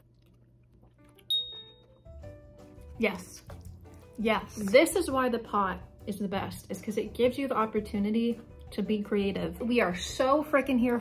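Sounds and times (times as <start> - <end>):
chewing noodles: 0.0 - 4.7
soft background music: 0.6 - 11.0
high chime: 1.3 - 1.8.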